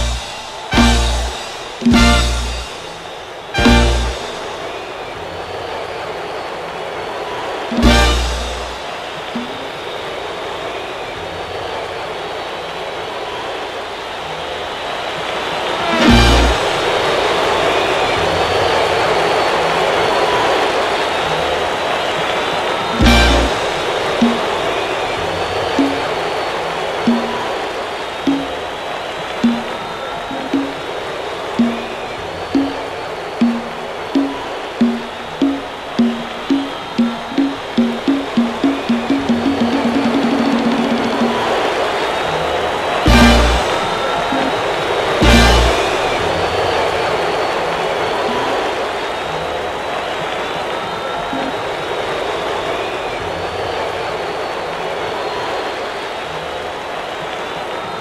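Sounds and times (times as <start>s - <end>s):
repeating low note: 0.0s - 2.8s
live salsa band: 0.0s - 2.9s, 3.6s - 4.5s, 7.8s - 8.8s, 15.8s - 16.8s, 23.0s - 24.5s, 25.8s - 26.1s, 27.1s - 27.4s, 29.4s - 29.7s, 31.6s - 31.9s, 32.6s - 32.8s, 33.4s - 41.6s, 43.1s - 44.6s, 45.2s - 46.1s
full-band hits: 0.0s - 3.0s, 3.6s - 4.6s, 7.8s - 8.8s, 23.0s - 24.5s, 25.8s - 26.0s, 31.6s - 31.9s, 33.4s - 41.6s, 43.1s - 44.6s, 45.2s - 46.0s
crowd cheering: 0.0s - 58.0s.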